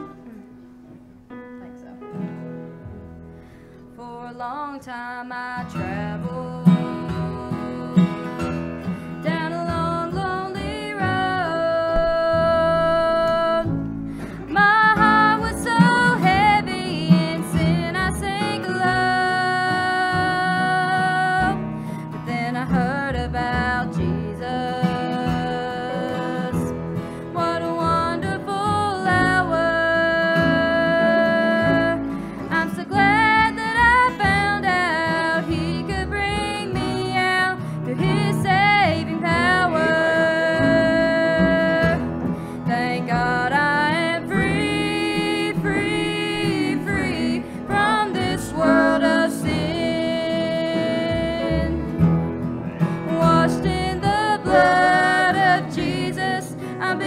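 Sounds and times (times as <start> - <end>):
acoustic guitar: 0.0 - 57.0
woman singing gospel: 4.0 - 8.4, 9.2 - 21.6, 22.2 - 42.1, 42.7 - 51.9, 53.1 - 57.0
upright double bass: 5.8 - 57.0.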